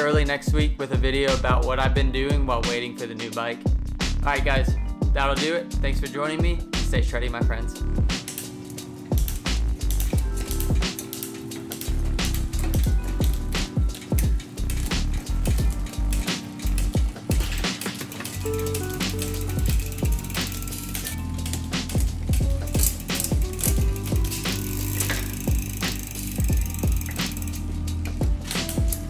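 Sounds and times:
background music: 0:00.0 - 0:29.0
derailleur shifting gears: 0:07.3 - 0:29.0
bike chain clicking: 0:07.7 - 0:29.0.

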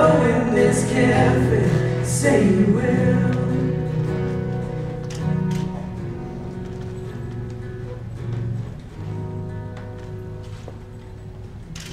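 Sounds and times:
person singing: 0:00.0 - 0:04.6
strummed acoustic guitar: 0:00.0 - 0:11.9.

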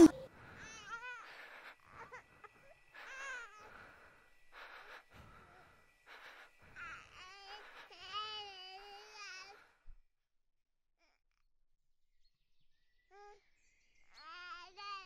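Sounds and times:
baby crying: 0:00.0 - 0:01.3
breathy noises: 0:00.0 - 0:02.3.

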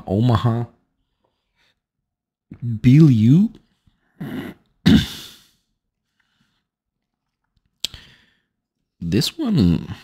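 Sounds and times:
man coughing: 0:04.2 - 0:05.6.

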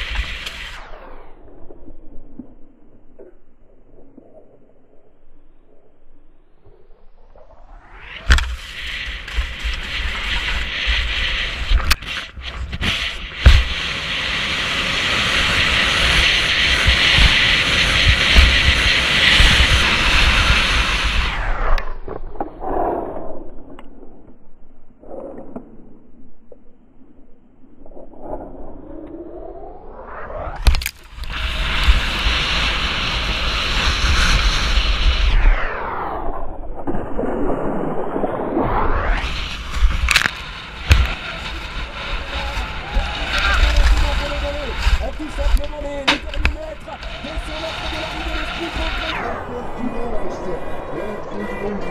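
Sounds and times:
skis rushing over snow: 0:00.0 - 0:00.8, 0:08.0 - 0:21.4, 0:30.6 - 0:35.2, 0:39.1 - 0:51.9
wind roaring over microphone: 0:00.0 - 0:02.9, 0:06.5 - 0:24.2, 0:27.8 - 0:51.9.

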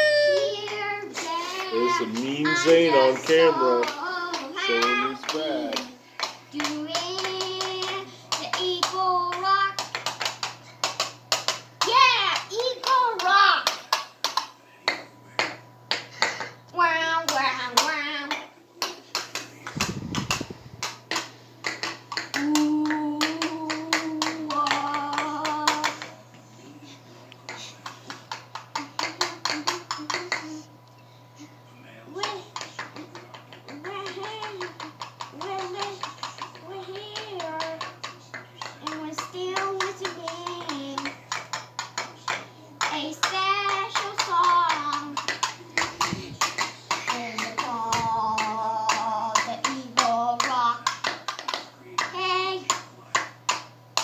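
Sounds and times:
child singing and chanting: 0:00.0 - 0:09.9, 0:11.8 - 0:13.7, 0:22.4 - 0:26.0, 0:33.7 - 0:38.0, 0:38.7 - 0:41.2, 0:42.8 - 0:45.3, 0:46.4 - 0:51.0, 0:52.0 - 0:52.8
hand claps: 0:00.4 - 0:16.5, 0:17.2 - 0:26.2, 0:27.3 - 0:30.6, 0:32.2 - 0:54.0.

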